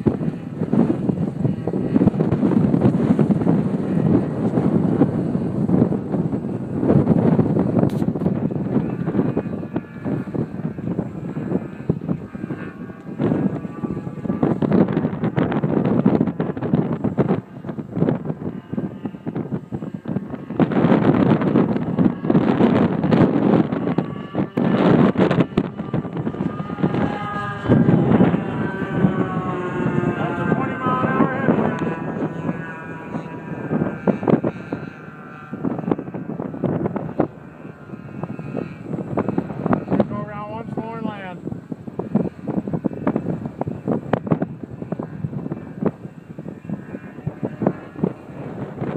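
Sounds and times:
model plane engines aloft: 0.0s - 48.9s
wind buffeting microphone: 0.0s - 48.9s.

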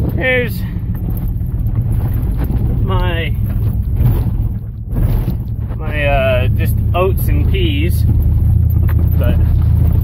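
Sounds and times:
truck engine low rumble: 0.0s - 10.0s.

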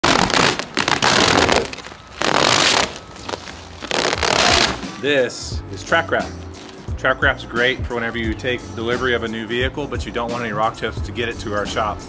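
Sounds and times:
plastic film tearing off: 0.0s - 5.0s.

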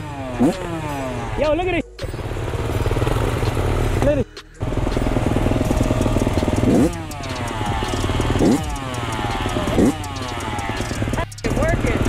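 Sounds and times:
dirt bike engine idling: 0.0s - 12.0s.

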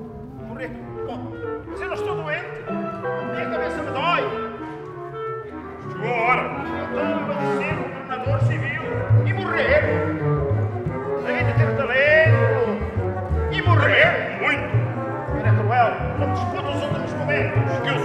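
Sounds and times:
small instrumental ensemble: 0.0s - 18.0s.

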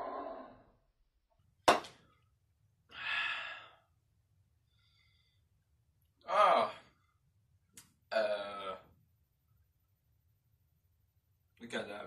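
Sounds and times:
man exhaling breathily: 2.9s - 3.9s.

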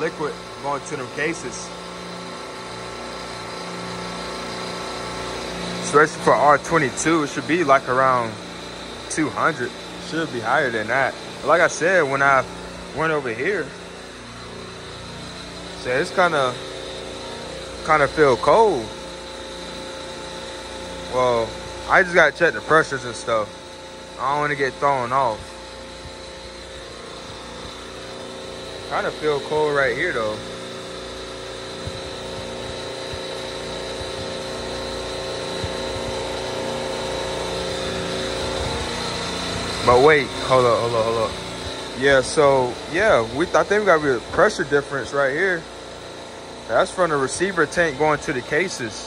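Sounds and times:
refrigeration compressors humming: 0.0s - 49.0s.

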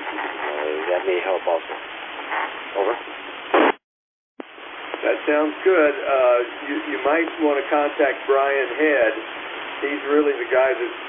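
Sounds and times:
radio static burst: 0.0s - 3.8s, 4.4s - 11.0s
voice over two-way radio: 0.4s - 1.8s, 2.8s - 3.0s.

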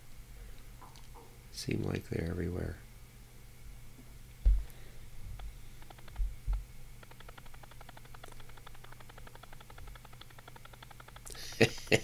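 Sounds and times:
steady low hum: 0.0s - 12.0s
soft low thumps: 4.4s - 6.7s
faint rapid ticking: 4.6s - 12.0s.

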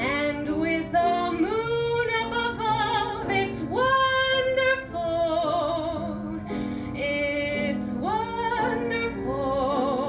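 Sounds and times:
grand piano accompaniment: 0.0s - 10.0s.

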